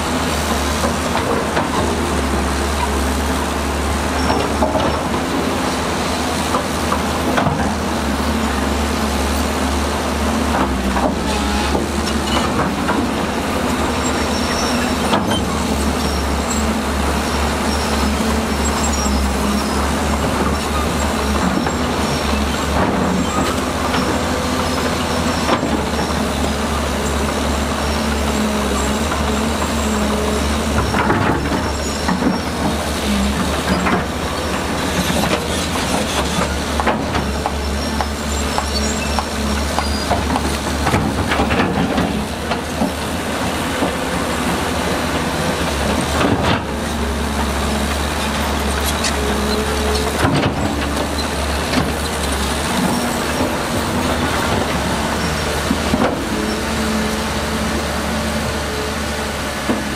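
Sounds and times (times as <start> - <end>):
diesel machinery engine hum: 0.0 - 59.9.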